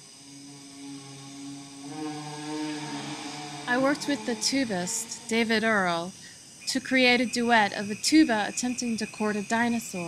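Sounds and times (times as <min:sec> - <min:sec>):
skull wind instrument low note: 0:00.4 - 0:05.6
tuba low note: 0:00.5 - 0:05.3.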